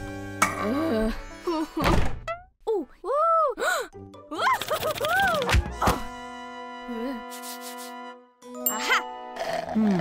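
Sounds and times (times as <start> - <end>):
background music: 0.0 - 1.8, 3.6 - 10.0.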